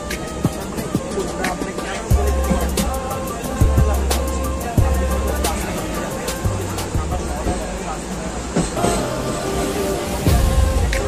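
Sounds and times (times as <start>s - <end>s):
background music: 0.0s - 11.0s
train rumble on rails: 0.0s - 11.0s
voice: 0.0s - 11.0s.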